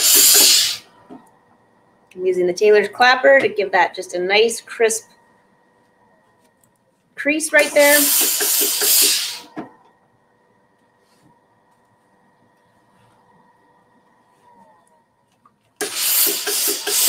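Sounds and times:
steam iron hissing: 0.0s - 0.9s, 7.5s - 9.5s, 15.8s - 17.0s
faint low hum: 0.9s - 7.5s, 9.6s - 15.8s.

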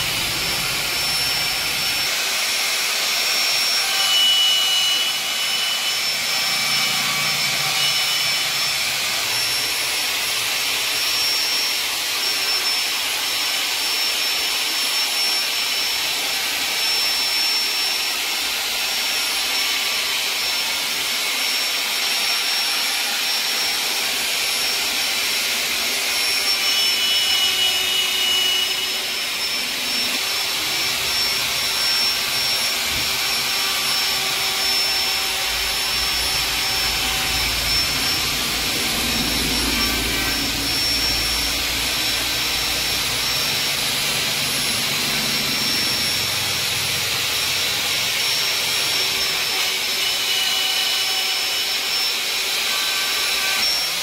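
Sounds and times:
thin steady whistle: 3.2s - 10.0s, 11.0s - 46.5s.

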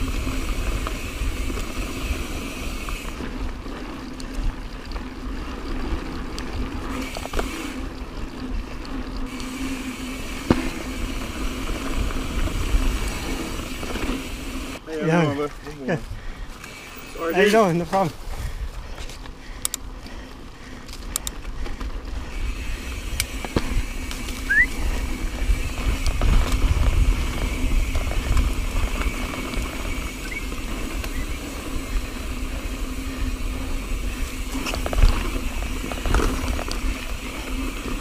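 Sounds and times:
bike knocking and rattling: 0.0s - 38.0s
bike tyres on dirt trail: 0.0s - 38.0s
wind rumble on microphone: 21.0s - 38.0s.

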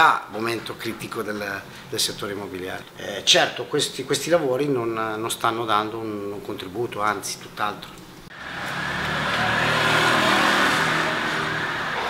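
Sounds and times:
vehicle passing: 8.3s - 12.0s.

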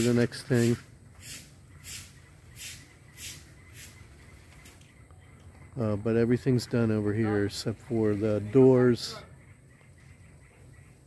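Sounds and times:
low outdoor background: 0.0s - 11.0s.

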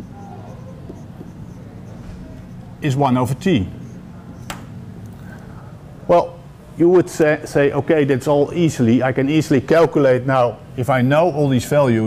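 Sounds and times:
pen tapping and scratching on screen: 0.0s - 2.6s
steady low hum: 0.0s - 12.0s.

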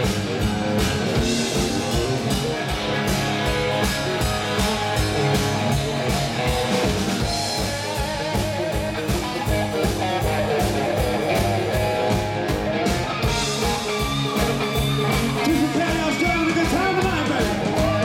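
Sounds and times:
bass guitar: 0.0s - 18.0s
drum kit steady beat: 0.0s - 18.0s
electric guitars: 0.0s - 18.0s.

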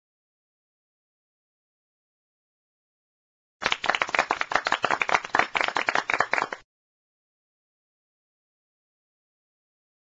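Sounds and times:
rapid clapping: 3.6s - 6.6s.

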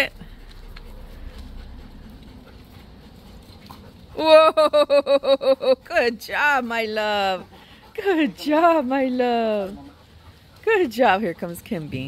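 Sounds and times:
dogs moving on dirt: 0.0s - 4.2s, 6.1s - 12.0s.

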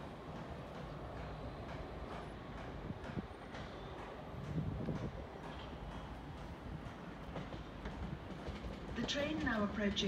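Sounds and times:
distant electric train rumbling: 0.0s - 10.0s
train wheel clicks on rail joints: 0.3s - 10.0s.

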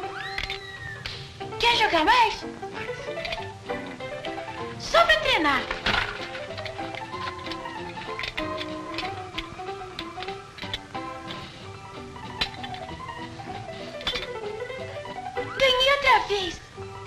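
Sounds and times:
instrumental background music: 0.0s - 17.0s.

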